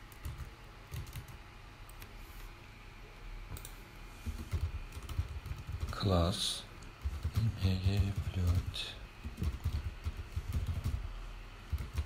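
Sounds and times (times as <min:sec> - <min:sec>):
computer keyboard typing: 0:00.0 - 0:02.1, 0:03.6 - 0:12.0.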